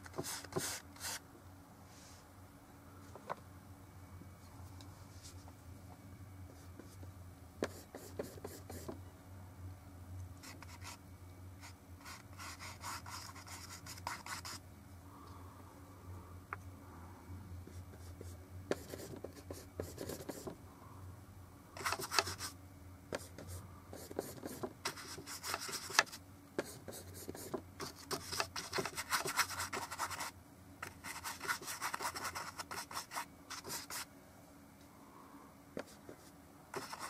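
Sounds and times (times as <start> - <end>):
paintbrush scrubbing paint: 27.3 - 34.0, 36.8 - 37.0.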